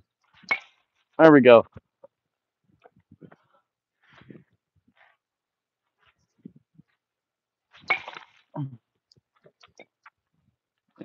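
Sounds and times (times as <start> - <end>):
bat hitting ball: 7.8 - 8.4.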